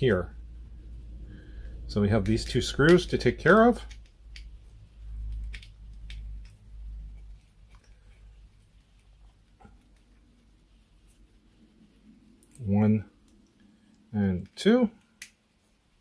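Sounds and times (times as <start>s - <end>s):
small sharp clicks: 3.8s - 4.6s, 5.2s - 6.6s.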